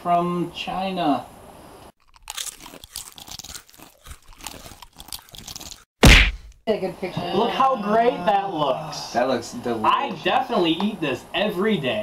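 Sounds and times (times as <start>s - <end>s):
crunching and chewing: 2.0s - 5.9s.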